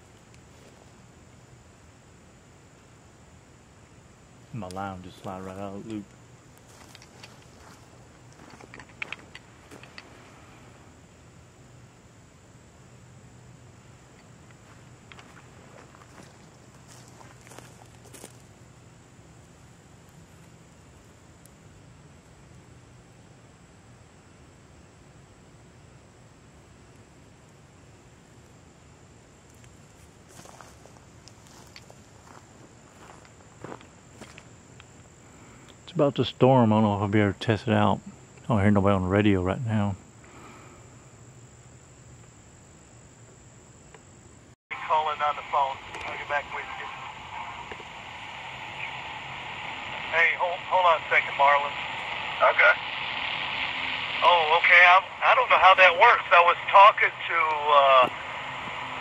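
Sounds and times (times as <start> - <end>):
faint low hum: 0.0 - 59.0
high insect drone: 0.0 - 59.0
footsteps: 6.6 - 10.2, 14.5 - 18.5, 30.0 - 34.5.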